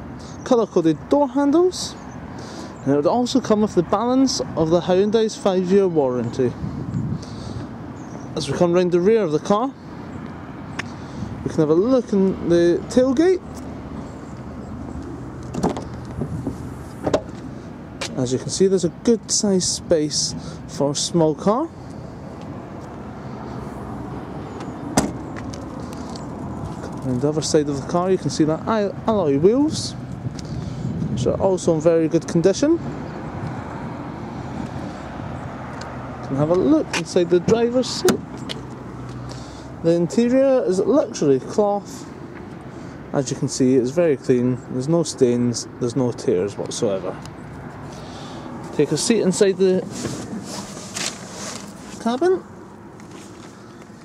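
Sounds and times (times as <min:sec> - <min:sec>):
car tailgate shutting with a thud: 0:24.9 - 0:25.2
clothing rustling against car seat: 0:49.8 - 0:52.2, 0:53.0 - 0:54.0
handling noise: 0:49.8 - 0:52.3
brief scuff: 0:49.9 - 0:52.0.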